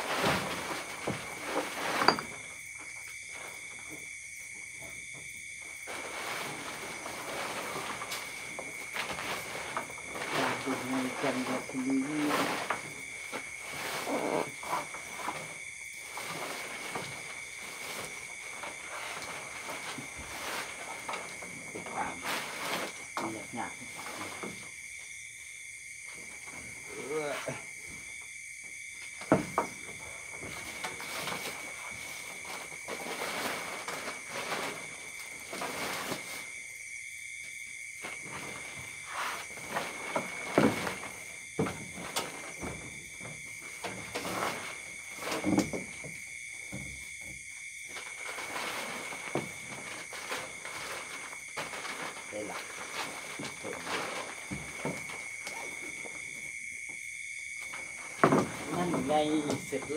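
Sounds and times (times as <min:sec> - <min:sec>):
tent fabric rustling: 0:00.0 - 0:03.8, 0:05.5 - 0:24.7, 0:29.8 - 0:36.8, 0:37.9 - 0:56.5.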